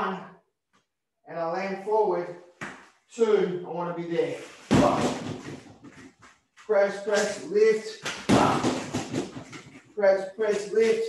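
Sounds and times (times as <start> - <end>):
bare footfalls on foam mats: 4.6 - 6.5, 8.1 - 9.7
punch thumping punching bag: 4.7 - 5.5, 8.3 - 9.4.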